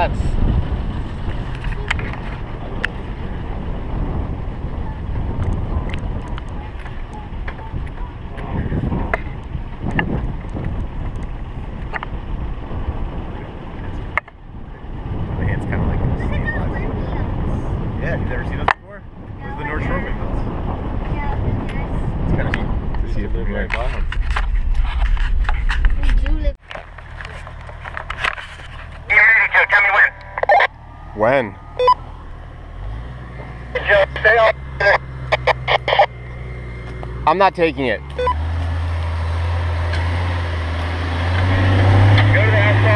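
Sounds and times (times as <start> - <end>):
wind on microphone: 0.0 - 26.6
vehicle engine and road rumble: 0.0 - 42.9.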